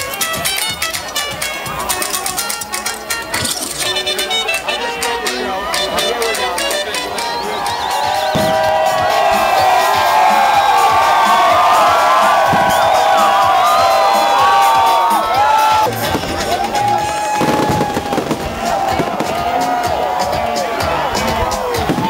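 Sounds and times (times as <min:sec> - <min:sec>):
crowd cheering and shouting: 0:00.0 - 0:22.0
music: 0:00.0 - 0:22.0
fireworks bangs: 0:08.2 - 0:14.9, 0:15.8 - 0:20.4, 0:21.2 - 0:22.0.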